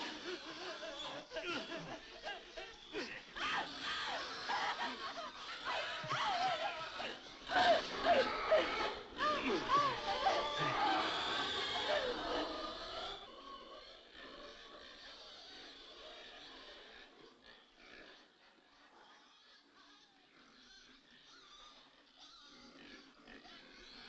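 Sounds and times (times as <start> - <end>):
shrill wavering cries: 0.0 - 13.1.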